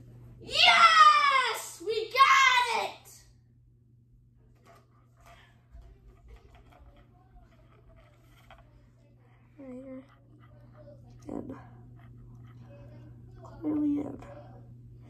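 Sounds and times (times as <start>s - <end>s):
boy yelling in triumph: 0.4s - 3.1s.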